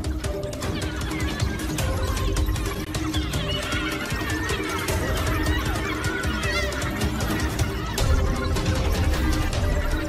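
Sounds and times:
background music: 0.0s - 10.0s
wild dogs twittering calls: 0.0s - 10.0s.

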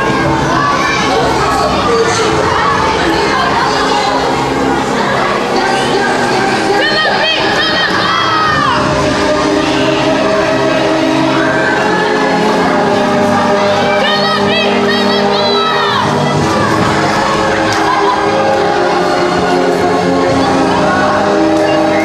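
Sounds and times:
people shouting and whooping: 0.0s - 4.5s, 5.4s - 19.8s
music with long held notes: 0.0s - 22.0s.

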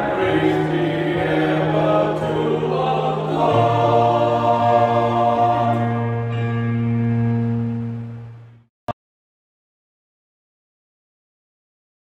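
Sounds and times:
men's choir sustained chord: 0.0s - 7.7s.

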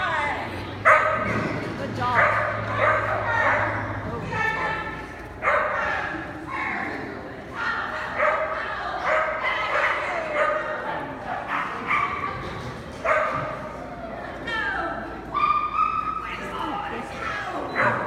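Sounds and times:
dog yipping: 2.2s - 3.8s, 15.3s - 16.3s.

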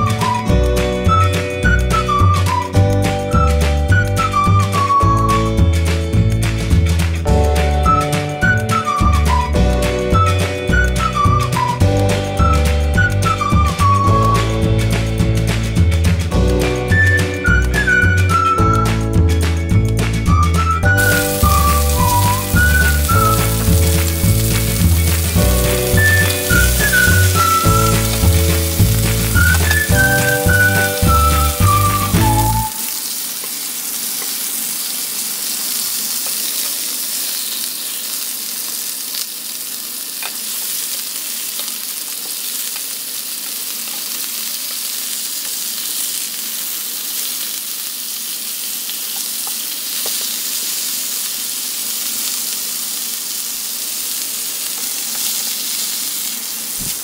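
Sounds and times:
whistled tune over bass beat: 0.0s - 33.0s
chicken sizzling in frying pan: 19.7s - 57.0s.

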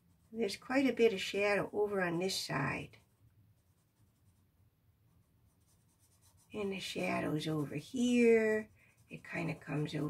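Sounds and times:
pencil scratching on paper: 0.0s - 10.0s.

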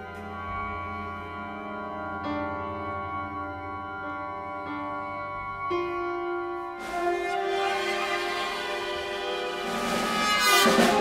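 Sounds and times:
orchestral music with strings: 0.0s - 11.0s
loud noisy orchestral burst: 6.8s - 11.0s.

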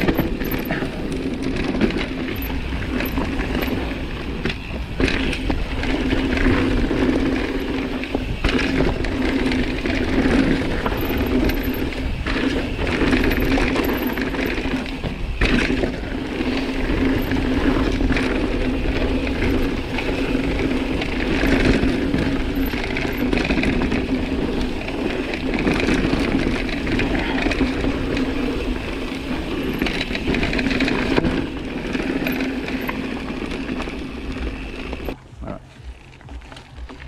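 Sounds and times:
wind on microphone: 0.0s - 36.9s
bike knocking and rattling: 0.0s - 37.0s
bike tyres on gravel: 0.0s - 37.0s.

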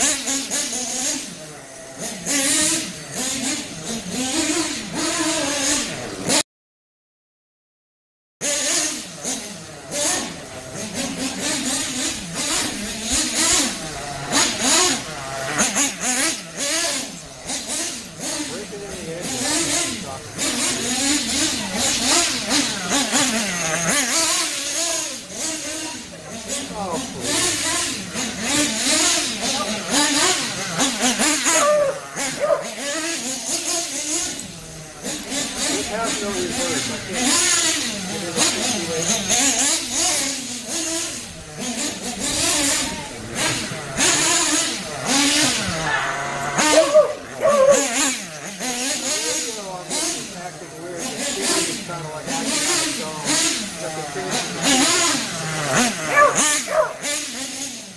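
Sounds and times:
model truck engine revving: 0.0s - 6.4s, 8.4s - 57.9s.

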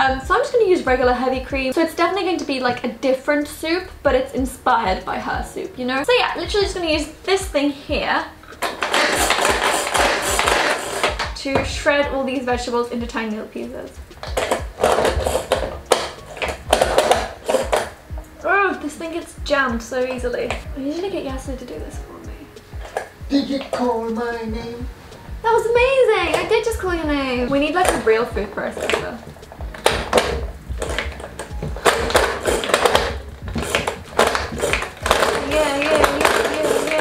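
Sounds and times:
manual food chopper rattling: 8.6s - 11.3s, 14.3s - 18.0s, 29.8s - 37.0s.

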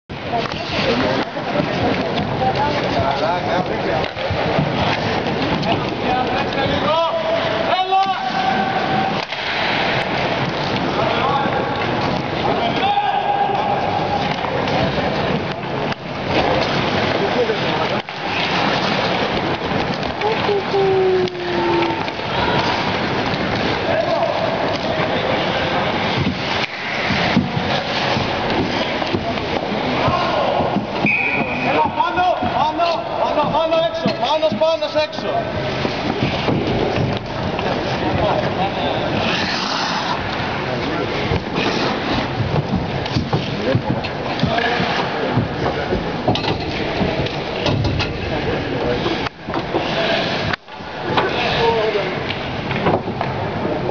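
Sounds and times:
steady background noise: 0.1s - 53.9s
skates scraping on ice: 0.2s - 46.1s, 48.2s - 53.9s
distant shouts: 12.7s - 14.1s
sticks and puck clicking: 14.2s - 31.1s.

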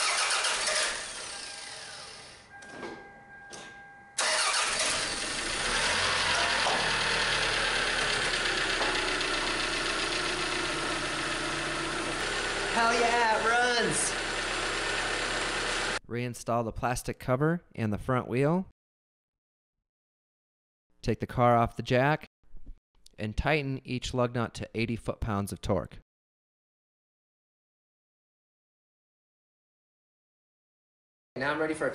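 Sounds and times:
car engine starting and running: 0.0s - 2.7s, 4.2s - 16.0s.

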